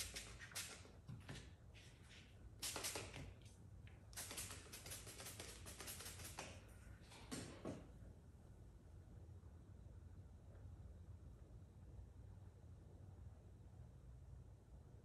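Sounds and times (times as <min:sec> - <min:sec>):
trigger spray bottle spritzing: 0:00.0 - 0:00.9, 0:02.6 - 0:03.4, 0:04.1 - 0:06.6.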